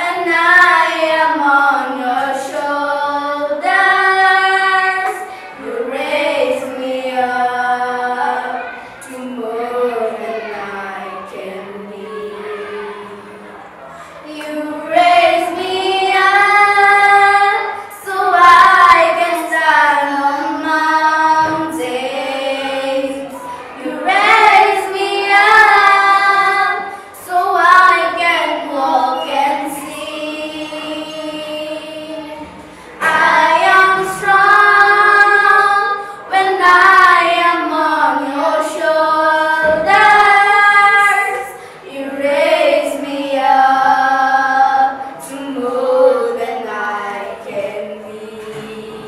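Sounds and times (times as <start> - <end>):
children singing together: 0.0 - 49.0.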